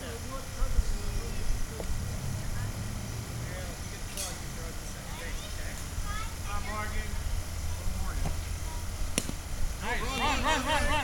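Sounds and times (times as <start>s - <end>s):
bat cracking a ball: 9.1s - 9.4s.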